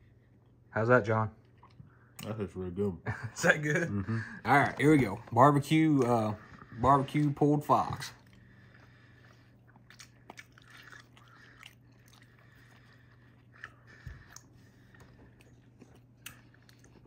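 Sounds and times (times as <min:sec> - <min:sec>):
low steady hum: 0:00.0 - 0:17.0
biting and chewing food: 0:04.4 - 0:17.0.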